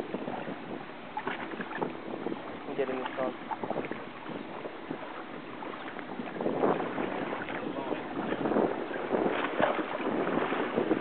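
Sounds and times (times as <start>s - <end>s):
water around a boat: 0.0s - 11.0s
wind: 0.0s - 11.0s.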